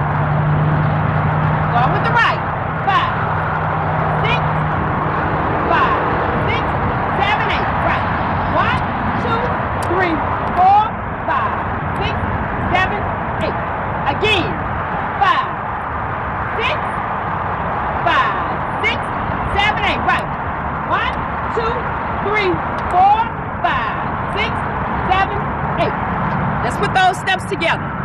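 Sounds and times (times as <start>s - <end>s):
vehicle engine hum: 0.0s - 28.0s.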